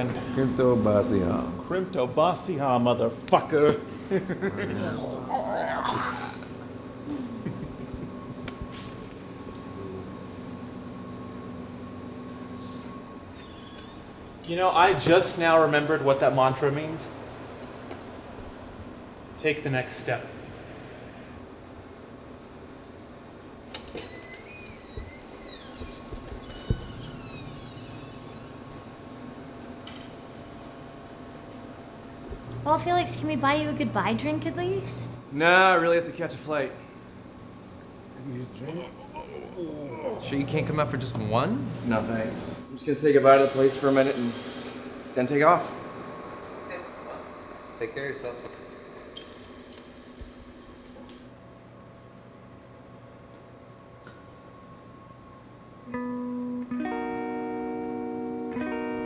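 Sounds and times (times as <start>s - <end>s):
steady faint hum: 0.0s - 59.0s
door hinges squeaking: 13.3s - 14.4s, 23.8s - 28.9s
door closing thump: 25.8s - 27.6s.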